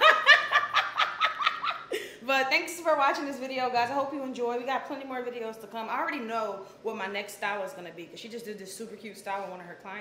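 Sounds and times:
woman laughing: 0.0 - 2.2.

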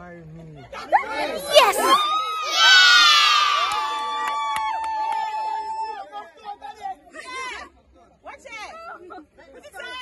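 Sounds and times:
crowd cheering and screaming: 1.5 - 6.0.

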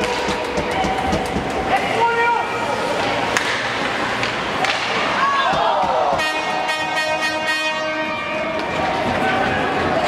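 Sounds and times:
hockey rink noise: 0.0 - 10.0
buzzy horn tone: 6.2 - 8.5.

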